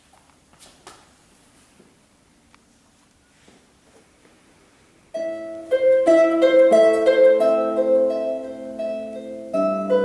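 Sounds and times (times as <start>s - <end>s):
harp melody: 5.2s - 10.0s.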